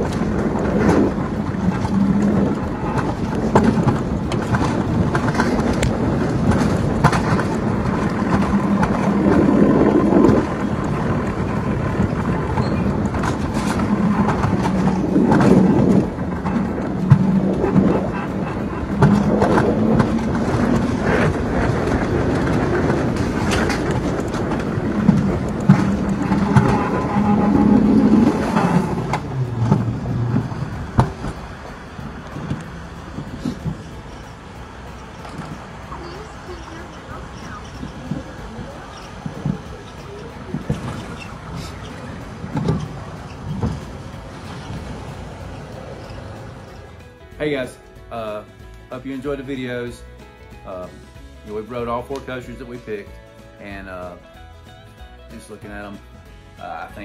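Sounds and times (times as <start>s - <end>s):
coaster wheels rumbling on rails: 0.0s - 57.0s
rail clacks: 0.0s - 57.0s.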